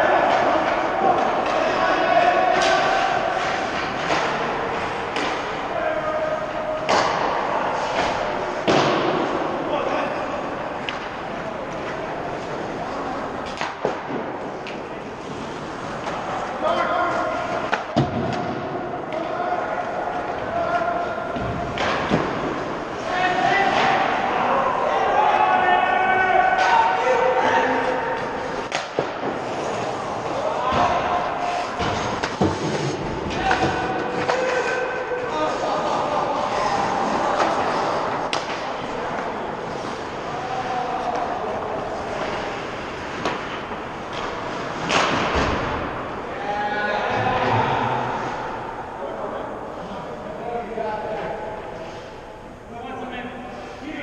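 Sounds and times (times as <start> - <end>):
ice rink background noise: 0.0 - 54.0
sharp knocks on rink boards: 0.2 - 5.7, 6.8 - 9.6, 13.4 - 16.5, 17.1 - 24.3, 27.8 - 36.0, 36.6 - 40.4, 41.0 - 46.0.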